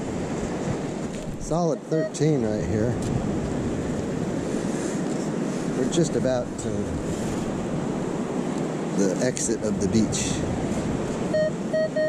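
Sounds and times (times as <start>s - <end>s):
ocean surf: 0.0s - 12.0s
wind noise on microphone: 0.0s - 12.0s.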